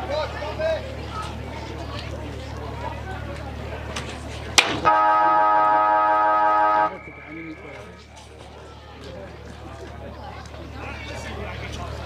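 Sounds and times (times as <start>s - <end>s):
siren blast: 4.8s - 8.0s.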